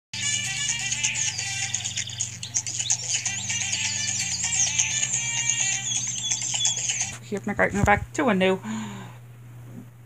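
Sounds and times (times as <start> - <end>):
high warbling chirps: 0.2 - 7.2.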